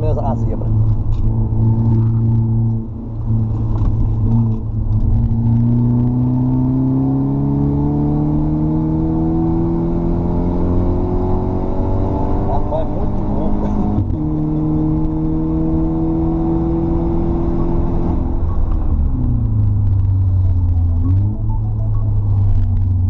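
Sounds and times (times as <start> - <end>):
car engine accelerating hard: 0.3 - 23.0.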